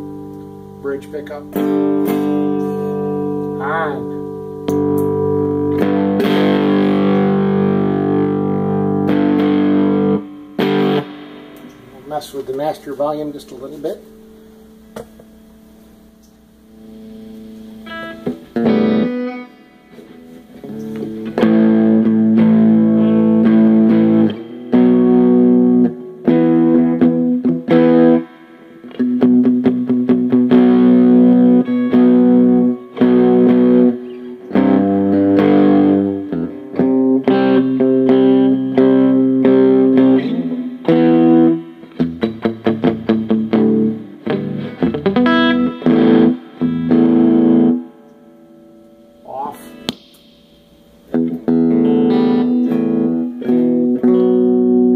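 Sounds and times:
electric guitar strummed chords: 0.0 - 54.9.

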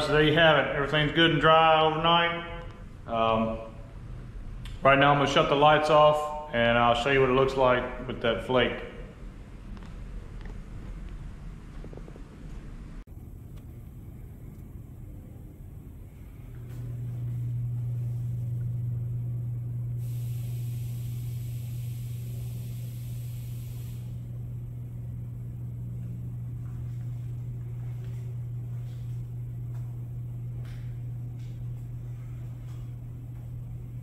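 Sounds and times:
low machine hum: 0.0 - 34.0
hiss: 20.0 - 24.3.

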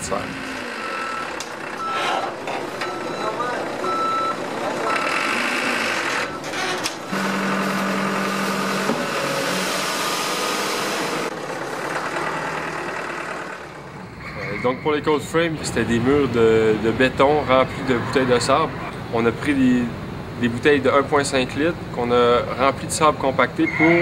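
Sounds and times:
truck reversing beeper: 0.1 - 11.3.

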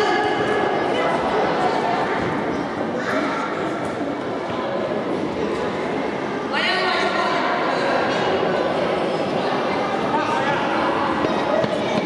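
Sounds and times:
voices shouting in echoing hall: 0.0 - 12.0.

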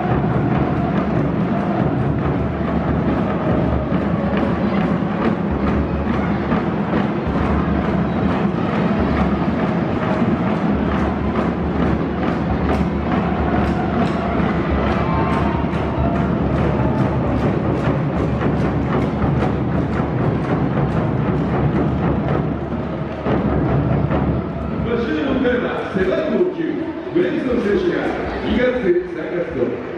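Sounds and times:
music with timpani and drums: 0.0 - 25.4.

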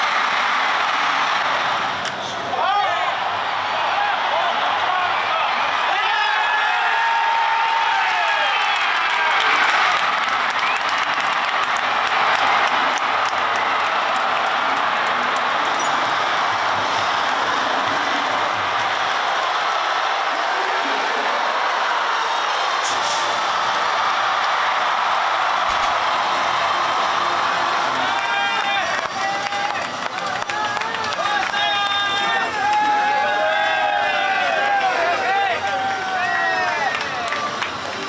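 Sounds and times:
players yelling: 0.0 - 38.0
stadium crowd cheering: 0.0 - 38.0.

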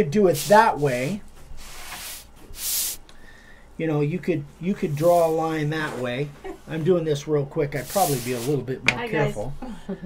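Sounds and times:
wooden board rubbing over cloth: 0.3 - 3.0, 7.8 - 8.6.

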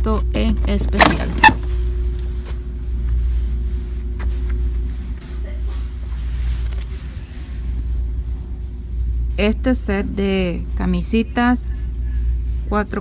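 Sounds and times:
faint steady hum: 0.0 - 13.0
store background rumble: 0.0 - 13.0
light clicks of merchandise: 6.5 - 7.0.

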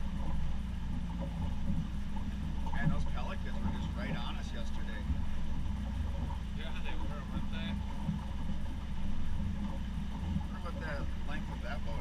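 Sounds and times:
boat engine rumbling: 0.0 - 12.0.

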